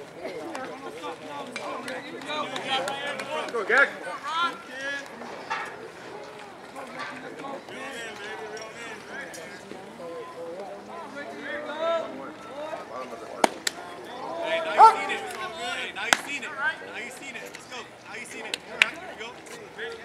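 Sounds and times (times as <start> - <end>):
voices chattering and calling out: 0.0 - 20.0.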